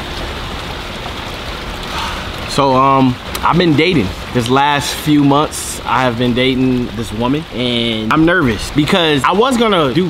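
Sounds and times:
fountain jets splashing: 0.0s - 10.0s.

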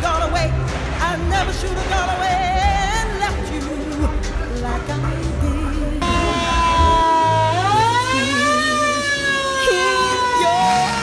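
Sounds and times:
siren wailing: 6.0s - 11.0s.

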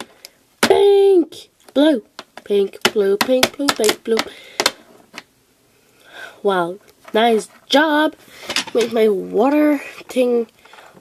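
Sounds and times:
child speaking: 0.6s - 4.3s, 6.4s - 10.5s.

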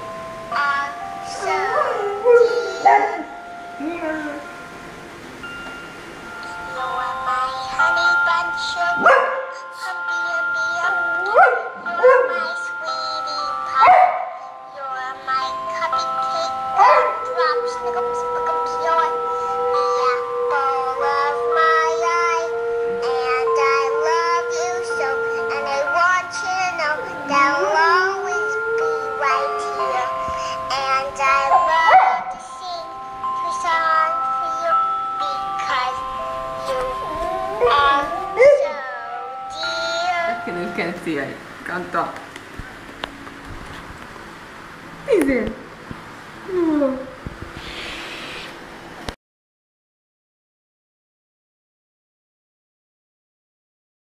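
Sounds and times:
chiming melody: 0.0s - 41.9s
dog howling: 1.4s - 4.4s, 9.0s - 9.6s, 11.1s - 12.5s, 13.8s - 14.4s, 16.8s - 32.4s, 36.7s - 40.2s.

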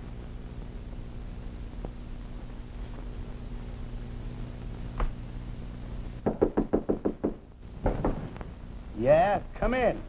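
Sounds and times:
knuckles knocking on door: 6.2s - 7.4s.

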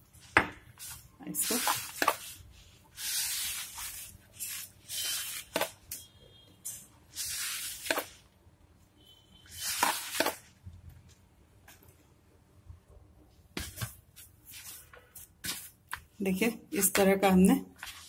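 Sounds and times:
hand kneading crumbly dough: 0.0s - 5.9s, 13.3s - 18.0s.

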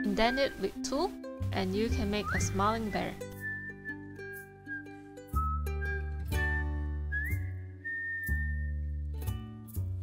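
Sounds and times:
whistled melody: 0.0s - 0.9s, 1.9s - 9.4s
plucked-string chords and bass: 0.8s - 10.0s.

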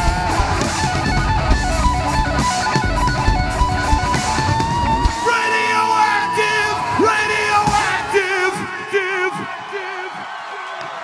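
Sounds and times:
strummed electric guitar: 0.0s - 9.0s.

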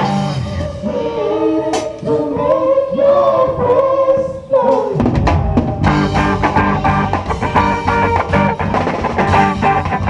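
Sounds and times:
bass guitar: 0.0s - 0.8s, 5.0s - 10.0s
voices singing long notes: 0.0s - 8.8s.

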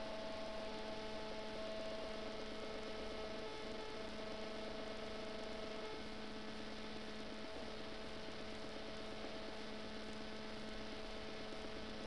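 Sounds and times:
faint held tones humming: 0.0s - 12.0s.

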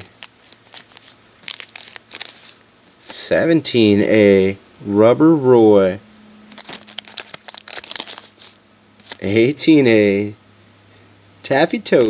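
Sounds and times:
plastic wrapper crinkling: 0.0s - 3.2s, 6.5s - 9.3s.

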